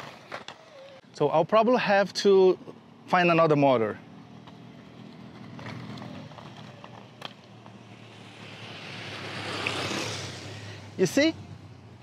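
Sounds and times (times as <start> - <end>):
skate wheels rolling on asphalt: 0.0 - 12.0
rushing noise: 7.8 - 11.1.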